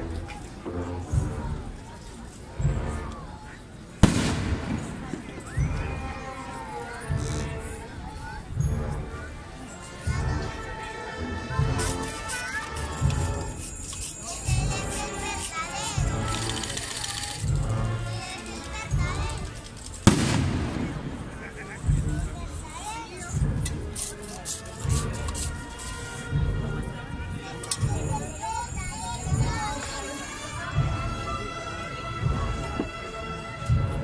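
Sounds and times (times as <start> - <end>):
crowd noise: 0.0 - 34.0
loud sharp bang: 4.0 - 5.6, 20.1 - 21.4.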